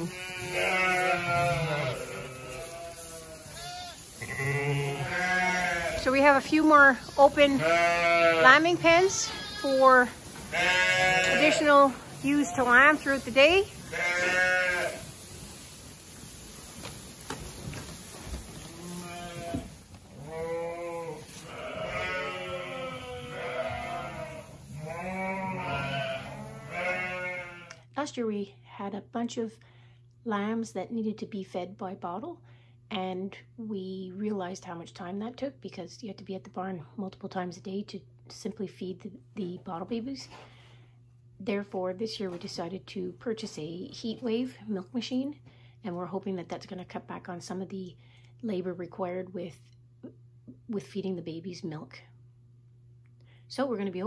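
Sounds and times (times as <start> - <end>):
sheep and lambs bleating: 0.0 - 15.1, 18.7 - 27.8.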